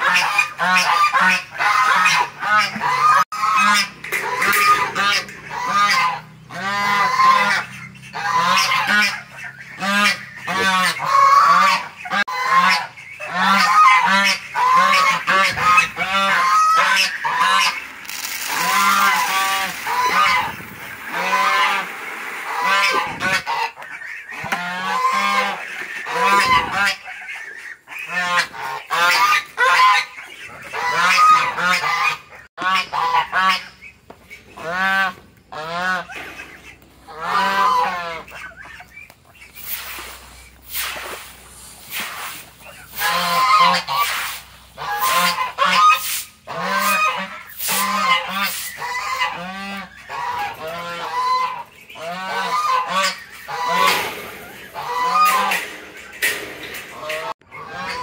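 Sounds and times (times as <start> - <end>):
geese honking: 0.0 - 58.0
feed pellets rattling into feeder: 17.4 - 22.5.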